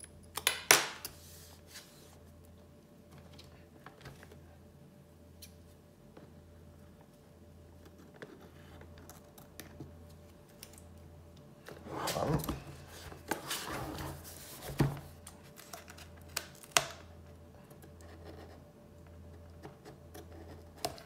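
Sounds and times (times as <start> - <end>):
steady low hum: 0.0 - 21.0
cardboard box rustling and scraping: 11.8 - 15.1.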